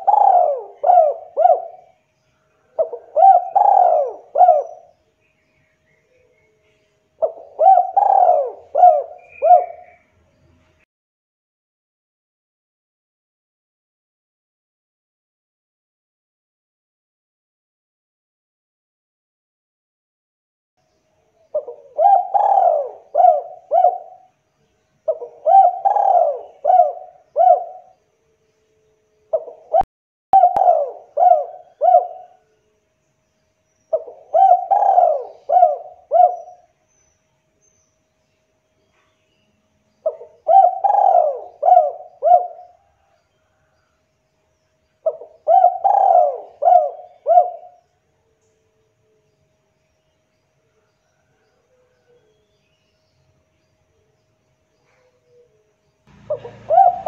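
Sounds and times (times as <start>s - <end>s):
dove cooing: 0.0s - 4.9s, 7.2s - 10.0s, 21.5s - 24.3s, 25.0s - 28.0s, 29.3s - 32.5s, 33.9s - 36.8s, 40.0s - 43.7s, 45.0s - 47.8s, 51.1s - 52.4s, 54.8s - 57.0s.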